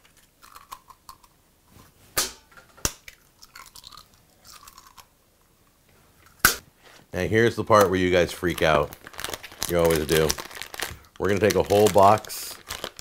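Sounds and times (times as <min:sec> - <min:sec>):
eggshell cracking: 0:00.0 - 0:01.4, 0:02.9 - 0:05.1.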